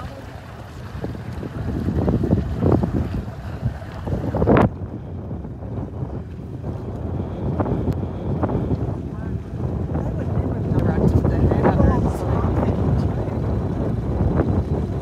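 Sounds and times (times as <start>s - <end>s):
lapping sea water: 0.0s - 15.0s
wind buffeting microphone: 0.0s - 15.0s.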